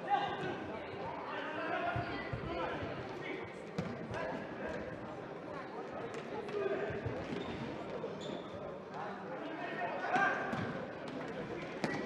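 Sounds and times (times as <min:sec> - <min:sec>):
voices in hall: 0:00.0 - 0:12.0.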